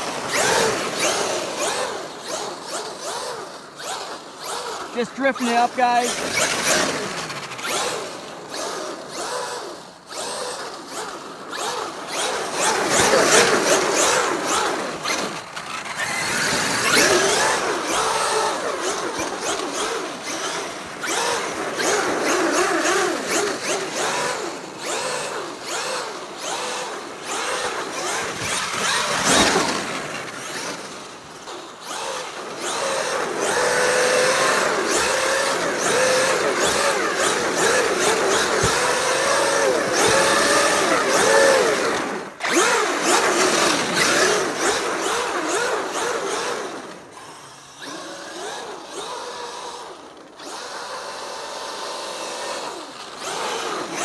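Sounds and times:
electric motor whining: 31.8s - 54.0s.

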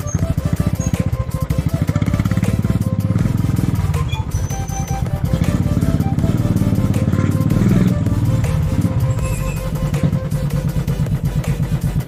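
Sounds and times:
faint music: 0.0s - 12.0s
motorcycle engine running: 0.0s - 12.0s.

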